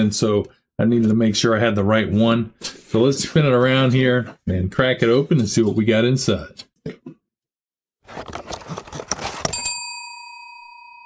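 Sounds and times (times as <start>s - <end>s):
cardboard box lid opening: 8.0s - 9.7s
packing paper rustling: 8.1s - 9.6s
bell ding: 9.5s - 11.0s.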